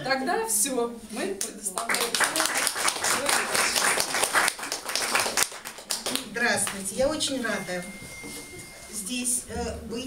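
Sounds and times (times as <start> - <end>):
audience applauding: 1.8 - 6.3.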